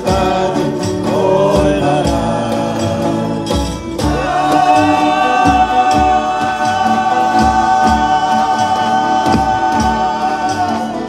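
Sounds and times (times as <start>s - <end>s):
drum beating steadily: 0.0s - 11.0s
group singing a held chord: 0.0s - 11.0s
strummed violas and guitars: 0.0s - 11.0s.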